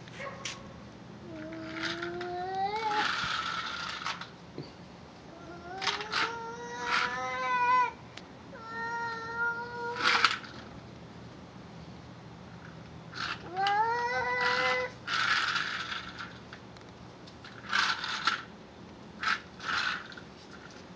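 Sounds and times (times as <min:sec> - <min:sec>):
toddler calling out: 0:01.4 - 0:03.1, 0:05.4 - 0:08.0, 0:08.6 - 0:10.2.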